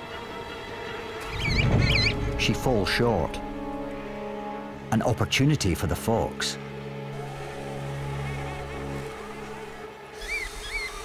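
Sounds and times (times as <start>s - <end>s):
bird chick peeping: 1.2s - 2.2s
small electric motor humming: 10.1s - 11.0s.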